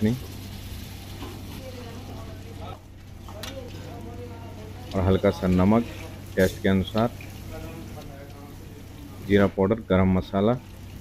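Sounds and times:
food sizzling in hot butter: 0.0 - 2.8, 3.7 - 9.5.

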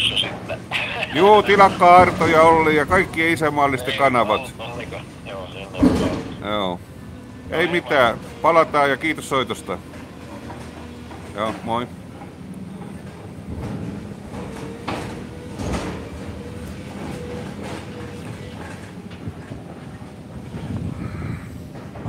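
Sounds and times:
faint whine: 0.0 - 6.7
excavator rumbling: 0.0 - 22.0.

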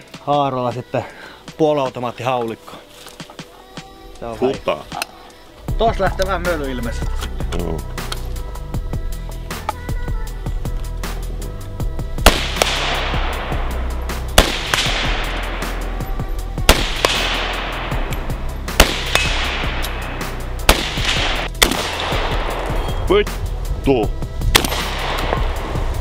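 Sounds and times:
background music with steady beat: 0.0 - 26.0
gunshots echoing: 12.2 - 23.0, 24.5 - 26.0.

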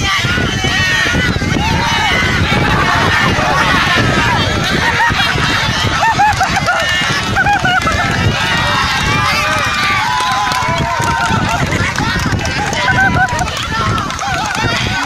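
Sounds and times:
crowd calling out and talking: 0.0 - 15.0.

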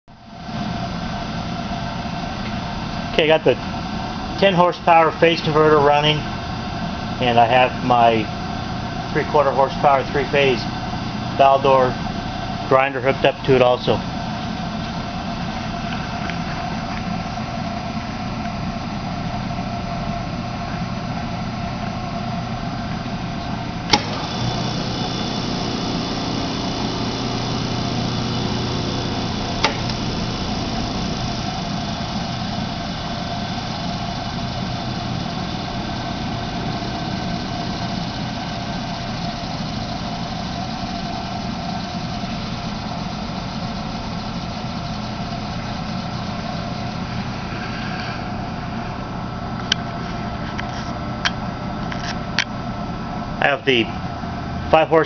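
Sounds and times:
phase converter humming: 0.1 - 18.0, 22.2 - 50.0
bench grinder running: 23.9 - 47.6
switch click: 25.2 - 31.3.

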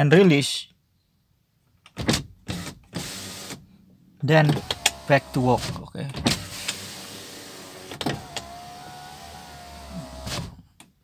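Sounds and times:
window motor stopping click: 4.5 - 5.7, 6.4 - 10.5
power window motor whine: 6.4 - 10.5.

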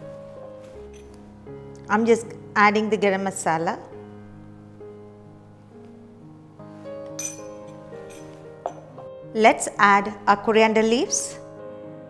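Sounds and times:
background music: 0.0 - 12.0
spoon clinking against bowl: 7.1 - 9.0.

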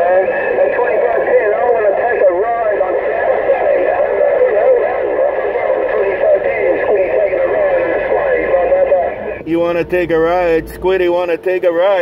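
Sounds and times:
garbled radio speech: 0.0 - 12.0
radio static hiss: 0.0 - 12.0.

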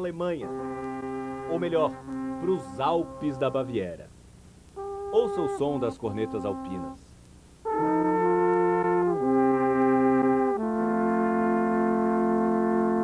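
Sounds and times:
alphorns playing chords: 0.0 - 4.0, 4.8 - 13.0.

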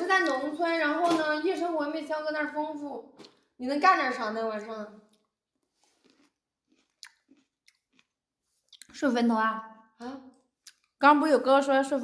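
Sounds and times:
mouth clicks and lip smacks: 6.0 - 9.0, 10.3 - 11.0.

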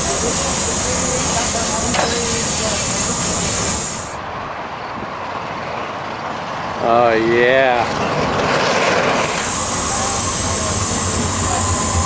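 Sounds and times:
steam hissing loudly: 0.0 - 4.2, 8.9 - 12.0.

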